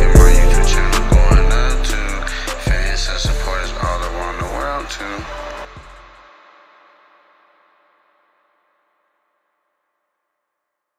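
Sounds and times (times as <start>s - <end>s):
hip-hop chord ringing: 0.0s - 6.0s.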